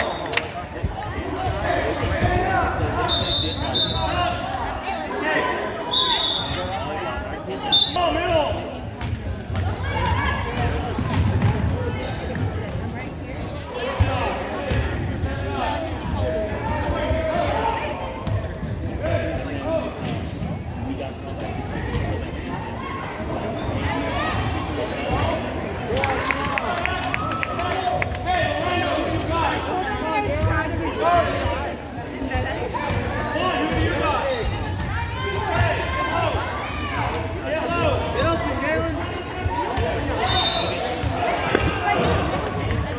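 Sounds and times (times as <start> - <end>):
voices of players and spectators: 0.0 - 42.9.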